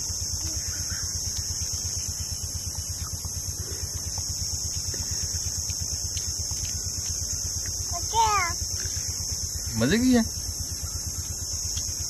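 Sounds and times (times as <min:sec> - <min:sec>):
steady high hiss: 0:00.0 - 0:12.0.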